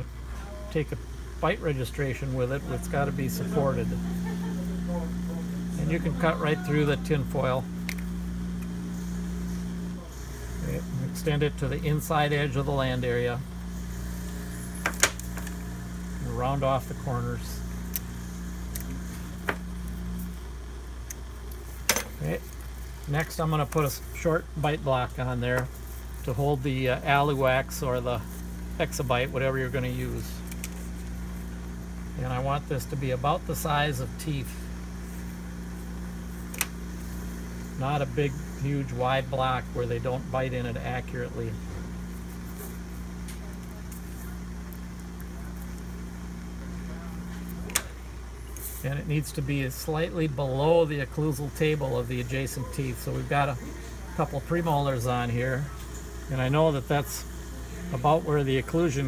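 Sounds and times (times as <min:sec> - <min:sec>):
low electrical hum: 0:00.0 - 0:59.0
fingers handling wax: 0:17.8 - 0:31.6.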